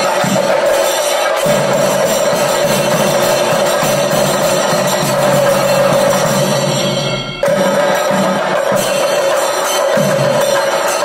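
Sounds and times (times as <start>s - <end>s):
drums played fast: 0.0s - 11.0s.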